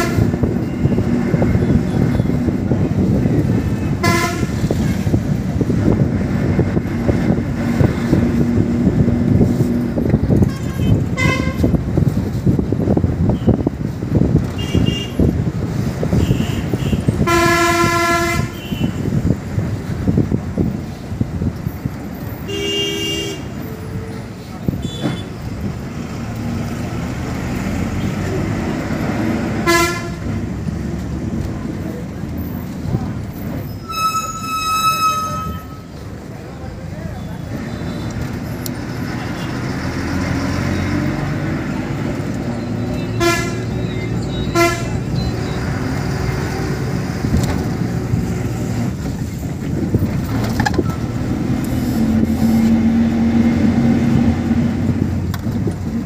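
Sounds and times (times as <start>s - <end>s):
bus horn toots: 0.0s - 2.6s, 3.7s - 5.2s, 10.3s - 11.8s, 14.4s - 15.4s, 16.0s - 19.2s, 22.4s - 25.4s, 29.5s - 30.4s, 33.8s - 36.0s, 42.7s - 45.8s
bus engine and road rumble: 0.0s - 56.0s.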